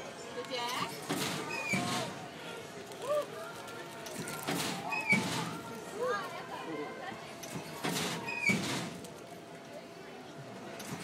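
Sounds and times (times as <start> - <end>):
children and adults chattering: 0.0 - 11.0.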